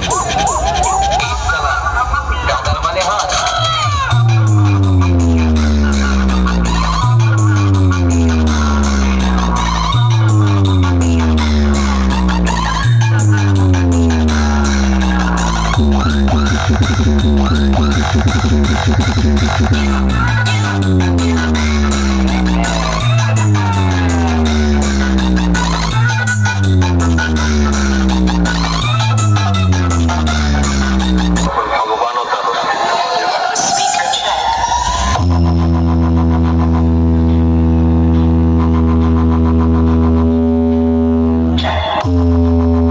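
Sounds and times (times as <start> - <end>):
loud electronic dance music: 0.0 - 42.9
deep bass drone: 4.0 - 31.6, 34.6 - 42.9.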